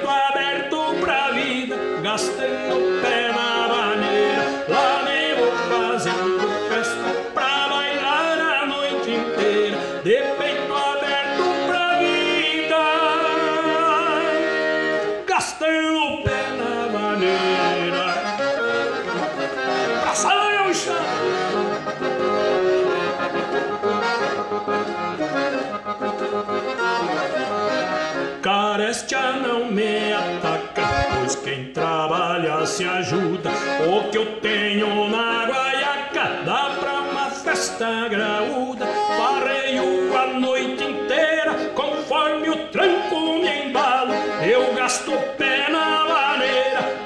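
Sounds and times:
piano accordion playing: 0.0s - 47.0s.

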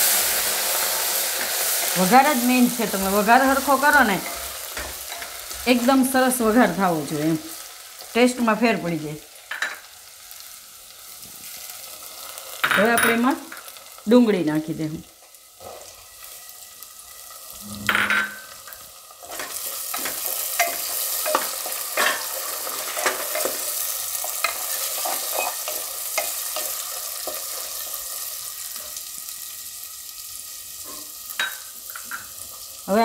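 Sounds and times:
onion sizzling in hot oil: 0.0s - 33.0s
spatula scraping and tapping pot: 17.7s - 23.7s.

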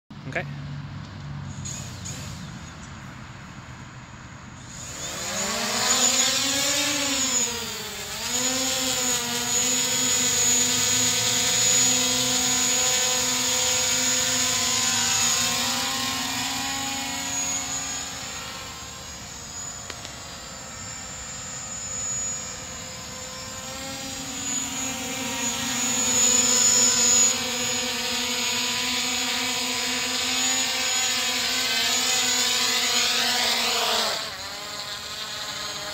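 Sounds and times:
drone propellers buzzing: 1.4s - 35.9s.

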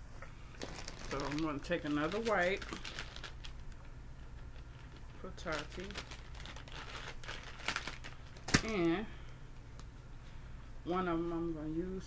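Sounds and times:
plastic wipes pouch crinkling: 0.5s - 8.9s.

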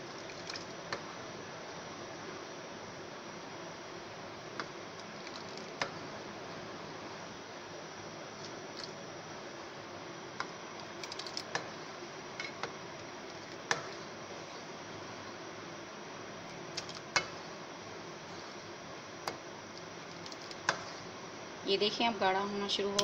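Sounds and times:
low hiss: 0.0s - 23.0s
spoon stirring custard: 18.2s - 21.2s.

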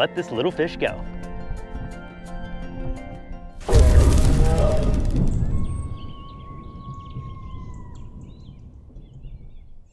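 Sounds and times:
loud crash: 3.6s - 6.2s.

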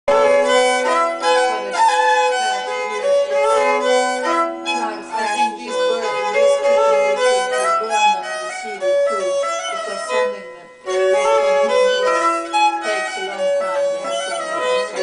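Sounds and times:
fiddle drone notes: 0.1s - 15.0s
solo fiddle folk tune: 0.1s - 15.0s.

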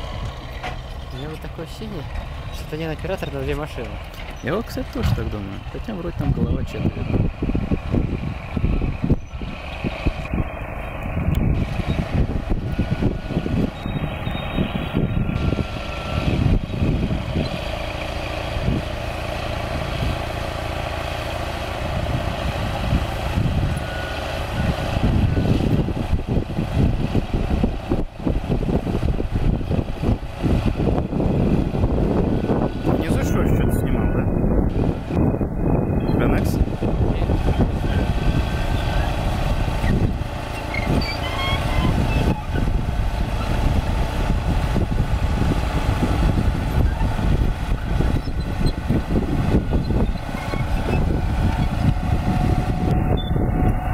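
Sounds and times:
bulldozer diesel engine under load: 0.0s - 53.9s
tracks knocking and clattering: 0.2s - 1.0s, 3.0s - 5.6s.

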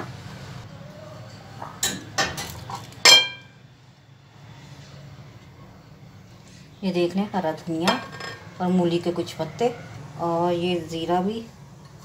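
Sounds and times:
crockery clattering: 1.8s - 3.5s.

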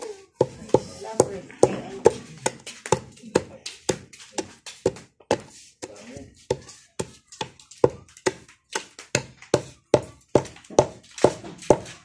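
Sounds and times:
pestle pounding in a mortar: 0.4s - 12.0s.

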